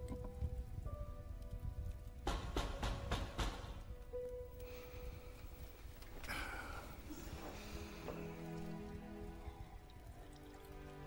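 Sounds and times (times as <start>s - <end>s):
soft film score music: 0.0s - 11.0s.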